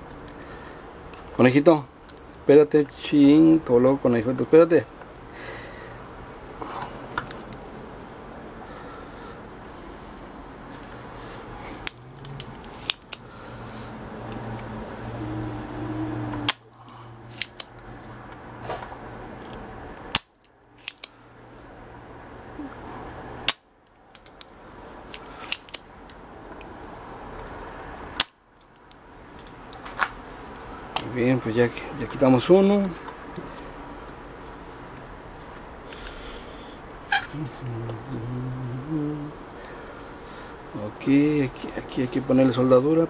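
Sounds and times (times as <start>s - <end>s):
desoldering pump snapping: 11.7s - 13.2s, 16.3s - 18.4s, 19.4s - 21.5s, 23.4s - 26.3s, 28.2s - 30.0s.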